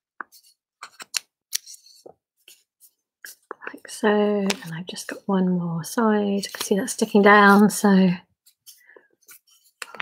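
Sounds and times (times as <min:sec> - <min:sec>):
paper crackling and creasing: 0:06.2 - 0:07.8.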